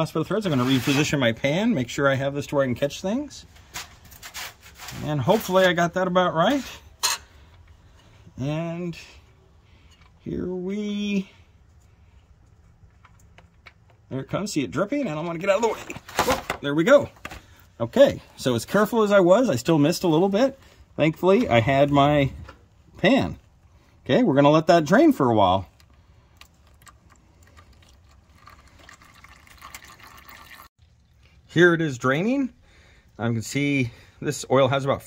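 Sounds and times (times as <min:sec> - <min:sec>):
small drip-like ticks: 0:25.7 - 0:31.4
oil pouring into drain pan: 0:26.4 - 0:31.1.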